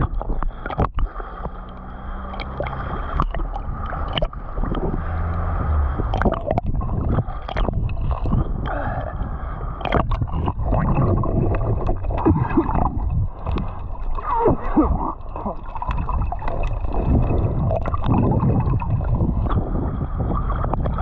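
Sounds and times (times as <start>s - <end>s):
muffled underwater rumble: 0.0s - 21.0s
sea water gurgling and sloshing: 0.0s - 21.0s
water bubbling and splashing: 0.0s - 21.0s.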